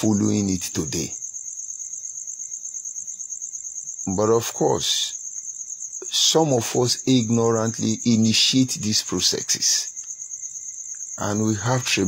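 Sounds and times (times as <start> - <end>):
insect trilling: 0.0 - 12.0.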